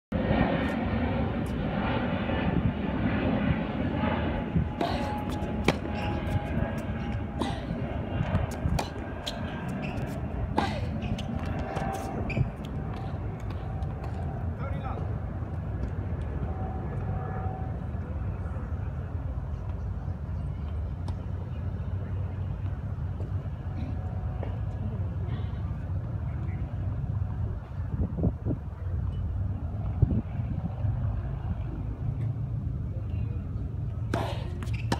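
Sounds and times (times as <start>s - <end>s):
steady low rumble: 0.1s - 34.9s.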